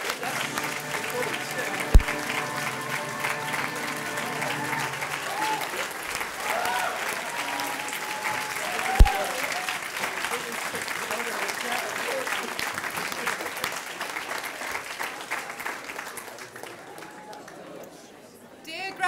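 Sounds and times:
crowd applauding: 0.0 - 17.8.

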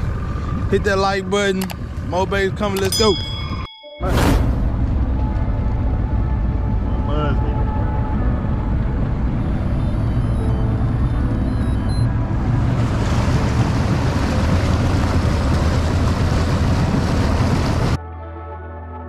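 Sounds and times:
outboard motor drone: 0.0 - 3.0, 4.7 - 18.0
wind: 0.0 - 18.0
wake water rushing: 12.5 - 18.0.

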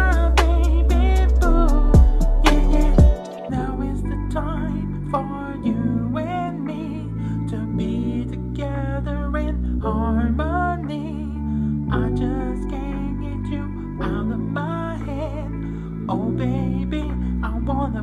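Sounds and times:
person singing a melody: 0.0 - 18.0
sustained bass notes: 0.0 - 18.0.

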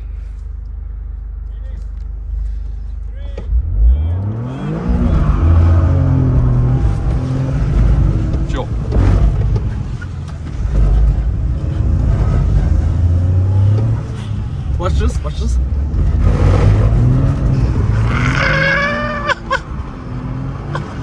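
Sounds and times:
car engine revving hard: 3.5 - 9.7, 15.7 - 21.0.

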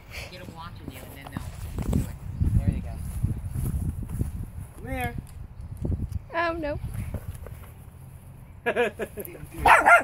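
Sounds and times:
puppies barking and yipping: 9.6 - 10.0.

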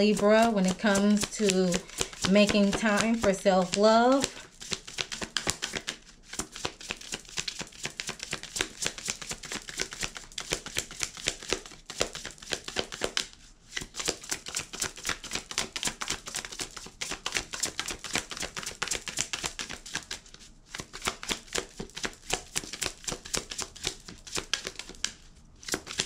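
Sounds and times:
cards being shuffled: 0.0 - 26.0.

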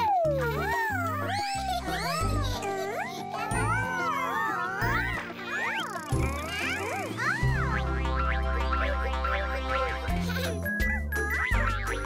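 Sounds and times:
bouncy cartoon music: 0.0 - 12.0
squeaky cartoon voice sounds: 0.0 - 12.0.

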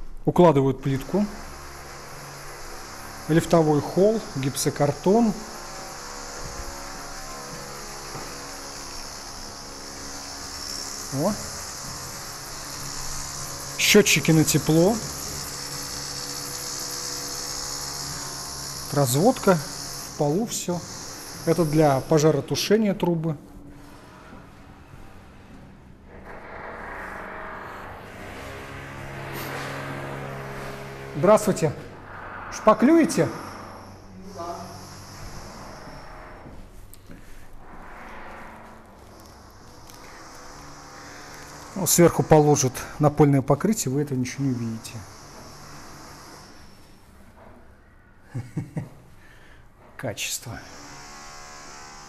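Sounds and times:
mechanical motor drone: 0.0 - 47.5, 50.5 - 52.0
faint high whine: 0.0 - 49.6
steady machine hum: 0.0 - 49.8.

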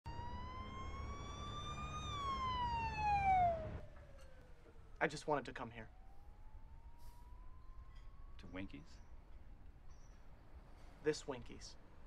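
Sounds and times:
siren wailing: 0.0 - 9.8.

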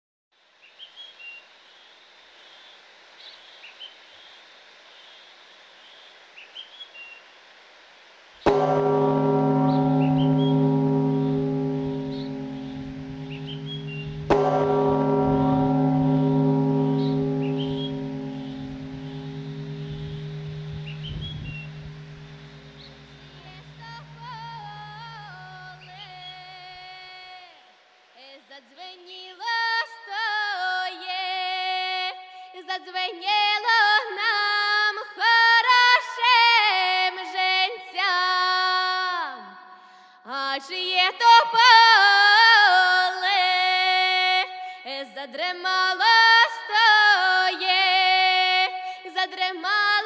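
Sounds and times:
large deep bell ringing: 8.5 - 26.8.

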